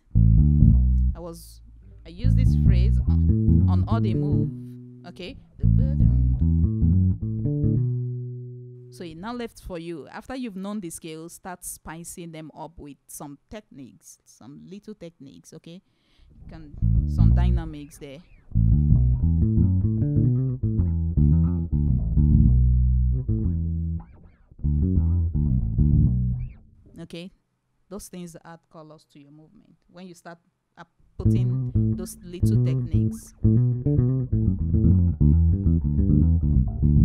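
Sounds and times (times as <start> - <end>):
electric bass guitar plucked: 0.0 - 9.0, 16.7 - 17.8, 18.4 - 26.9, 31.2 - 37.0.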